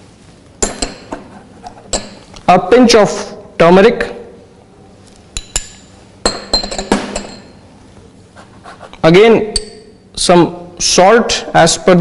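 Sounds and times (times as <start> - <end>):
metal spoon clinking on bowls: 0.6 - 1.2, 1.9 - 2.3, 5.4 - 7.6, 9.5 - 10.0.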